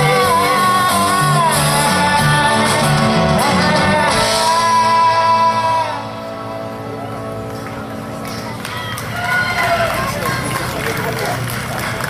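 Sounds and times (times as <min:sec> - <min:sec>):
crowd cheering and whooping: 0:06.8 - 0:12.0.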